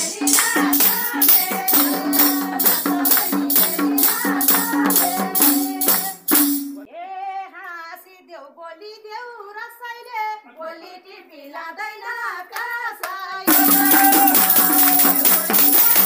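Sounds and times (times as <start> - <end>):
hand drum beating: 0.0 - 6.9, 13.5 - 16.0
jingling shaker: 0.0 - 6.9, 13.5 - 16.0
women singing folk song: 0.0 - 16.0.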